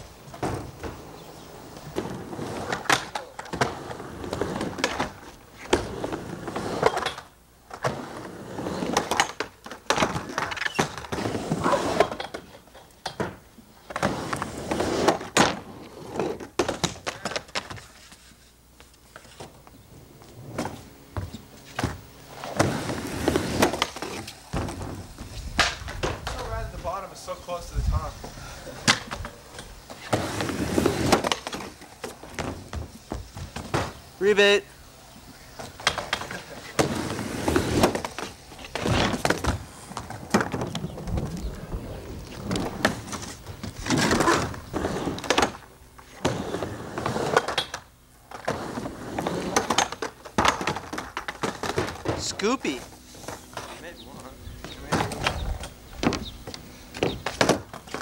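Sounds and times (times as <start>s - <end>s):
skateboard wheels rolling on wood: 0.0s - 58.0s
skateboard clacks and thuds: 20.5s - 26.6s, 35.6s - 52.4s, 54.6s - 58.0s.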